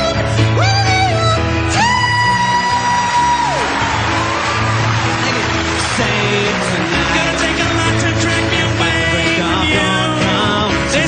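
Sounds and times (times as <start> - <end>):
live pop-rock band: 0.0 - 11.0.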